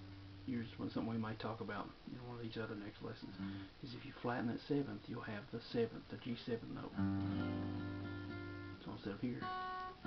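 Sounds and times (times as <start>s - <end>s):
acoustic guitar chord ringing: 7.0s - 10.0s.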